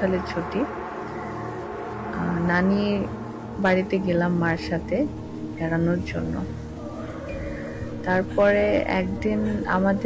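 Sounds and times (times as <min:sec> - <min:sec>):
steady buzzing drone: 0:00.0 - 0:10.0.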